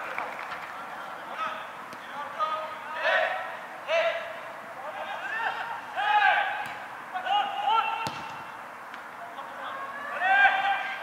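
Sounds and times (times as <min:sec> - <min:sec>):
open-air ground noise: 0:00.0 - 0:11.0
distant players shouting: 0:02.0 - 0:11.0.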